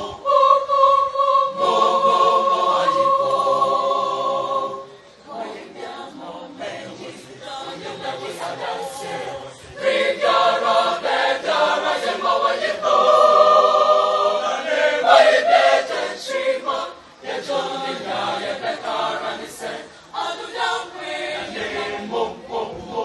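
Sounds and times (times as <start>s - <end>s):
choir singing: 0.0s - 23.0s.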